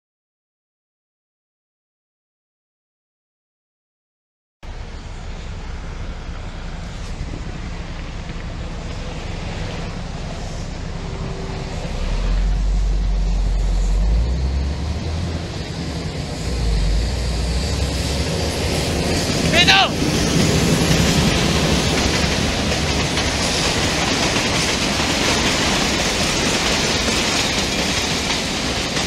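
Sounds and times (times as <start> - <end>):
diesel locomotive rumbling: 4.6 - 29.0.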